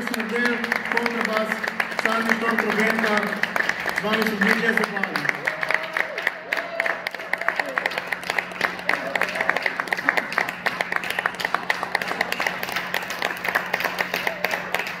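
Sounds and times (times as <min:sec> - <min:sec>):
audience applause: 0:00.0 - 0:15.0.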